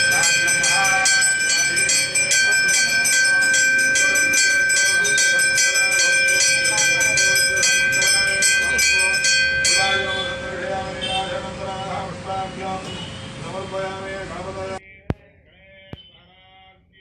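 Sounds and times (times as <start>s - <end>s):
bell rung rapidly: 0.0s - 11.2s.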